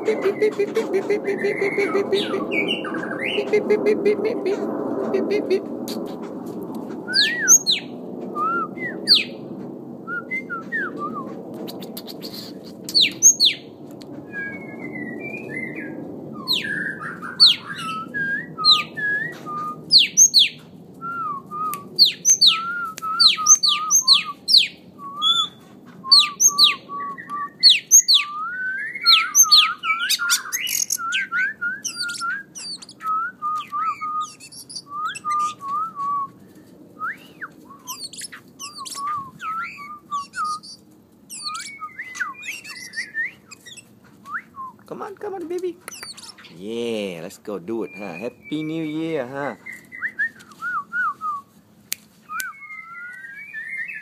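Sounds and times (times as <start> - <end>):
songbirds singing: 0.0 - 3.8, 5.9 - 51.0, 52.3 - 54.0.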